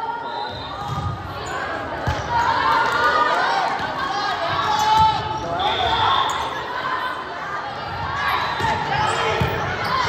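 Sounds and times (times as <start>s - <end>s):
players and spectators calling out: 0.0s - 10.0s.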